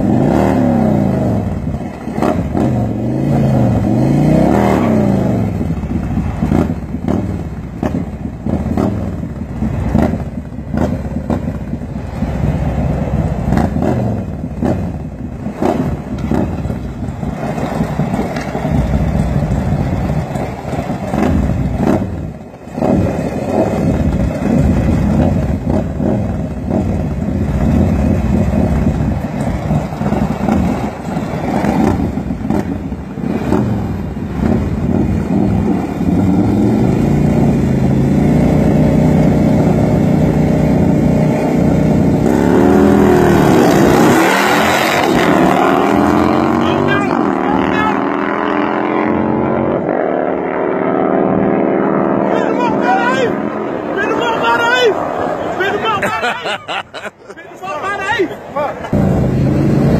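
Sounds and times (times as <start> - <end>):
motorcycle engines revving: 0.0 - 59.9.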